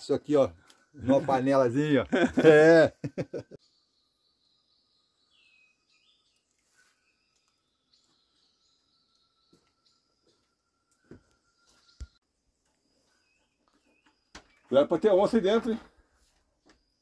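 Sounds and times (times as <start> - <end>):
distant birds chirping: 0.0 - 17.0.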